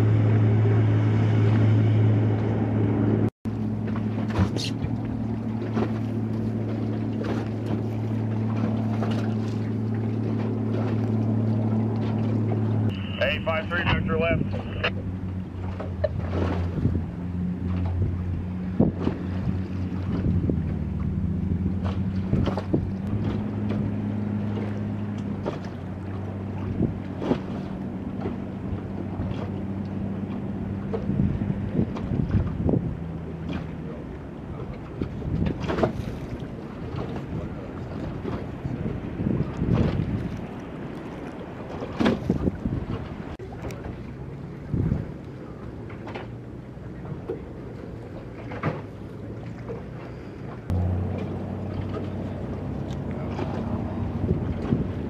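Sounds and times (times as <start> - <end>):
boat engine droning: 0.0 - 55.0
water slapping: 0.0 - 55.0
wind buffeting microphone: 13.8 - 43.8, 44.4 - 45.6, 50.6 - 55.0.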